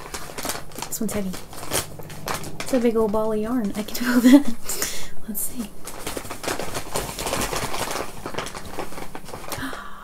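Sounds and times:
packaging rustling and crinkling: 0.0s - 4.8s, 5.4s - 10.0s.

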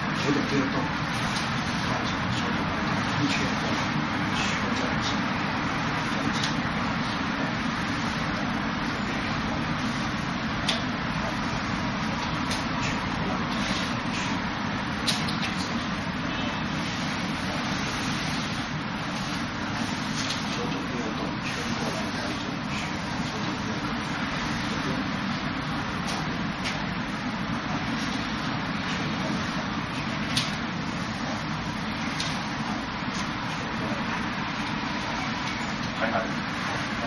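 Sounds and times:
steady hiss: 0.0s - 37.0s
steady rushing background noise: 0.0s - 37.0s.

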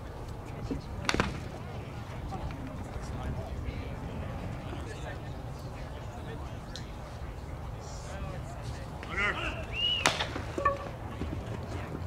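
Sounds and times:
voices calling out: 8.9s - 11.3s.

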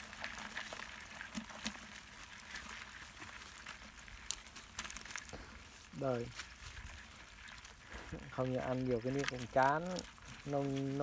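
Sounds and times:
crab shells clicking and scratching: 0.0s - 11.0s.

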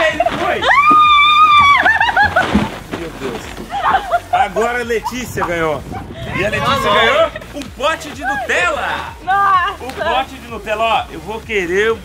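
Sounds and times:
person laughing: 1.7s - 2.6s, 3.7s - 7.6s.

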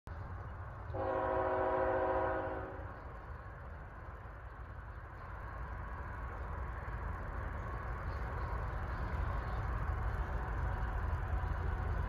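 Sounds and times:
locomotive air horn chord: 0.9s - 2.8s.

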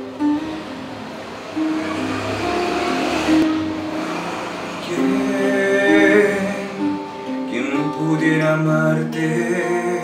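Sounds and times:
slow guitar instrumental: 0.0s - 10.0s.

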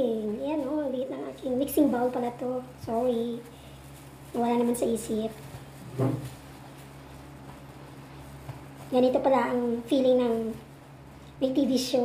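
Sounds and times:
steady low hum: 0.0s - 12.0s
dull knock: 5.9s - 6.2s.

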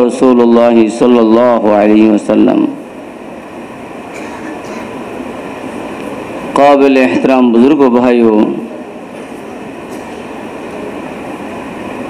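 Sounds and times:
man preaching: 0.0s - 2.8s, 6.5s - 8.7s
steady background noise: 0.0s - 12.0s.

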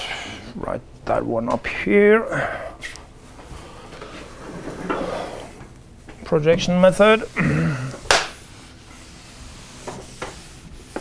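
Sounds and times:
eraser rubbing on chalkboard: 6.6s - 11.0s.

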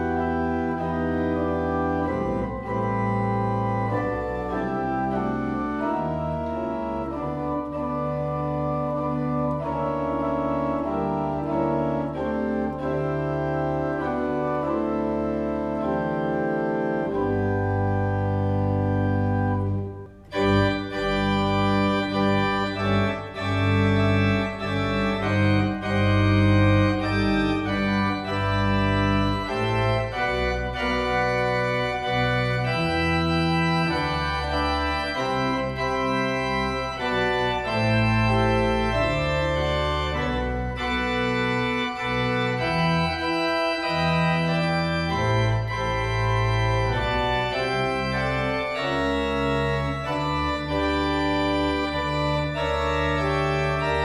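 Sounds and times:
church organ playing hymn: 0.0s - 54.0s.

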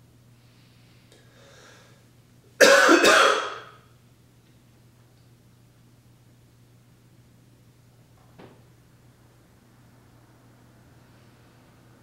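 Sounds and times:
man coughing: 2.6s - 3.8s.

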